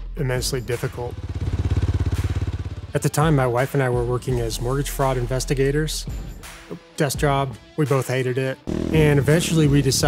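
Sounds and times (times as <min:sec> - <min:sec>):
dirt bike engine running: 0:00.8 - 0:03.5, 0:08.7 - 0:10.0.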